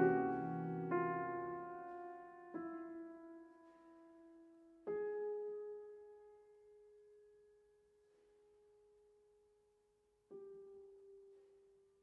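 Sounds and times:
faint piano tone: 0.0 - 9.6, 10.3 - 12.0.

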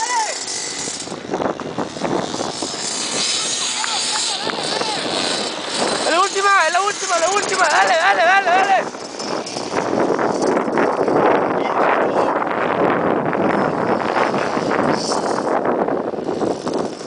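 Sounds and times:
dirt bike engines revving: 0.0 - 17.0.

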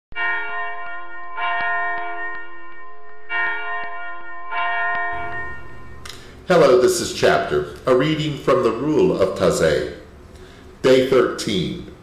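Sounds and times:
bell ringing: 0.1 - 6.8.

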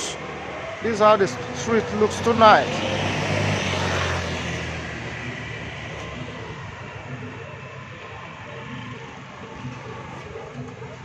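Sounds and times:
street background noise: 0.0 - 11.0
vehicle engine hum passing: 0.0 - 11.0.

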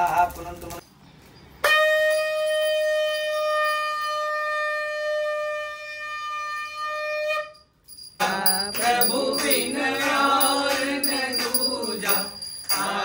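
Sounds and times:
conch shell blown: 1.6 - 7.8.

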